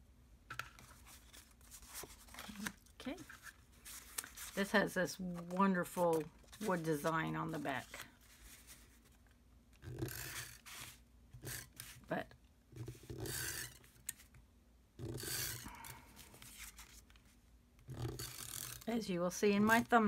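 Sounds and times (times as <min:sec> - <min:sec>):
paper handling: 0:00.6 - 0:09.2, 0:15.6 - 0:17.4.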